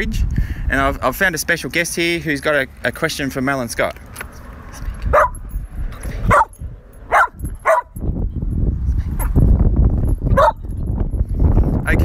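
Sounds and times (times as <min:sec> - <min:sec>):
dog barking: 0:05.1 - 0:05.4, 0:06.3 - 0:06.5, 0:07.1 - 0:08.0, 0:10.4 - 0:10.6.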